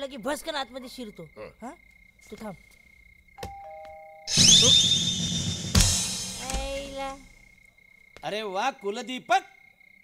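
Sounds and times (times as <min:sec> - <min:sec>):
ding-dong doorbell chime: 0:03.5 - 0:04.3.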